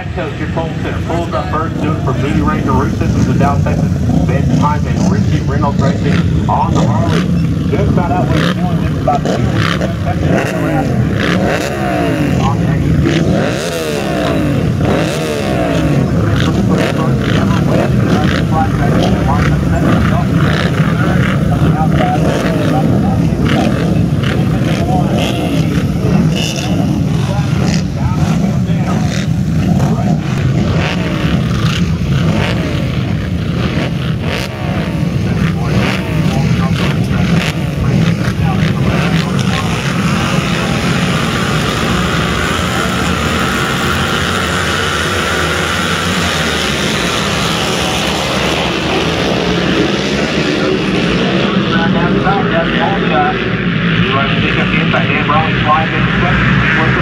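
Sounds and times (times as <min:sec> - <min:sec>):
motorcycle engines revving: 0:00.0 - 0:57.0.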